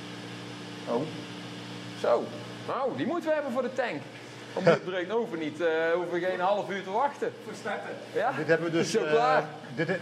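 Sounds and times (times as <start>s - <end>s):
machinery and ventilation hum: 0.0s - 10.0s.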